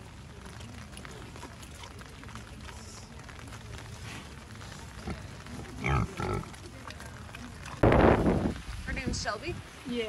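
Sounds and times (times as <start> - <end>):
pig grunting: 4.2 - 7.8.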